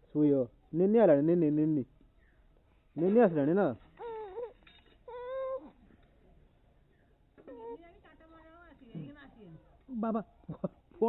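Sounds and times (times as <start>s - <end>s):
high-pitched mewing cry: 4.0s - 5.8s.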